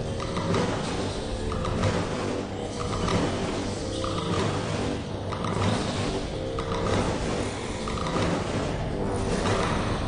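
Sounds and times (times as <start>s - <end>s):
steady low tones: 0.0s - 10.0s.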